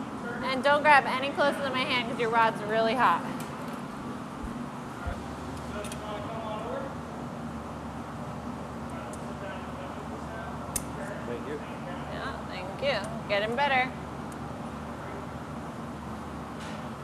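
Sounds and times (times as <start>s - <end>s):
furnaces and ventilation roaring: 0.0s - 17.0s.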